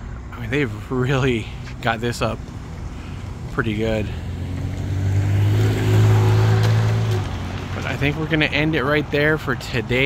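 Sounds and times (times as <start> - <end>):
engine droning: 0.0 - 10.0.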